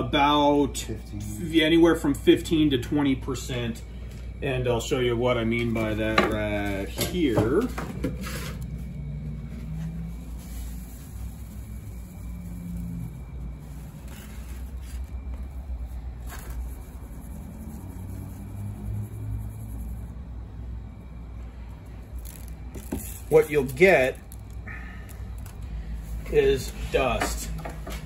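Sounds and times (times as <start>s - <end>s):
low steady rumble: 0.0s - 28.0s
powder grains rattling in mesh strainer: 22.1s - 25.6s.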